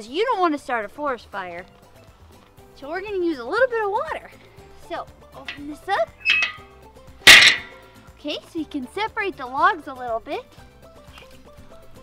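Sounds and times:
loud metallic clank: 5.5 - 6.6, 7.3 - 7.8
metal grate scraping: 5.5 - 6.6, 7.3 - 7.8.

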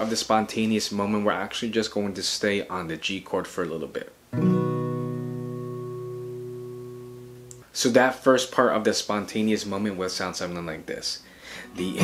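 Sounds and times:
acoustic guitar chord strum: 4.3 - 7.6.

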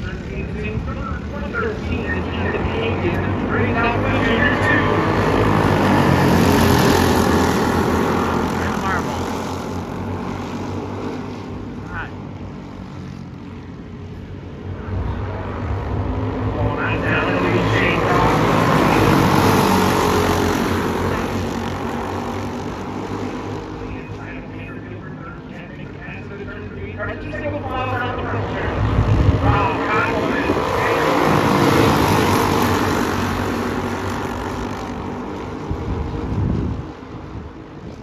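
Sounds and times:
go-kart engines racing past: 0.0 - 38.0.

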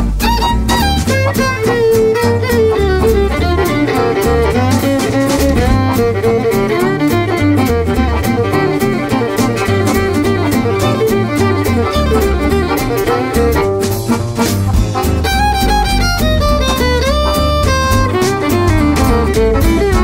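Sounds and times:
swing jazz band playing: 0.0 - 20.0
violin: 0.0 - 20.0.

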